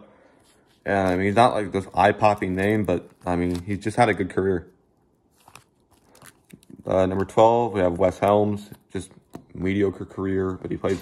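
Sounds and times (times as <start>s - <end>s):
plastic card holders crinkling: 0.4s - 11.0s.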